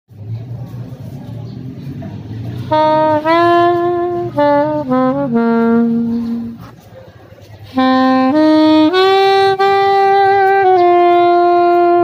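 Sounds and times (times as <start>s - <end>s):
low engine rumble: 0.1s - 12.0s
street noise: 0.1s - 12.0s
saxophone: 2.6s - 6.8s, 7.6s - 12.0s.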